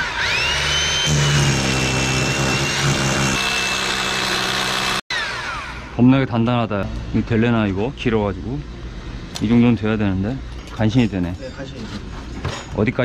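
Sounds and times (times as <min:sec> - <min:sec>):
rotary hammer drill boring masonry: 0:00.0 - 0:05.2.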